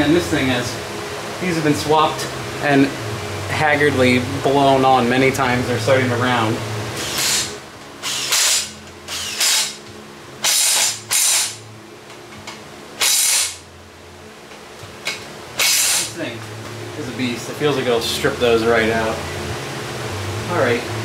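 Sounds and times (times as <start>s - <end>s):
cordless power tool bursts: 7.0s - 9.8s, 10.4s - 11.6s, 13.0s - 13.6s, 15.6s - 16.1s.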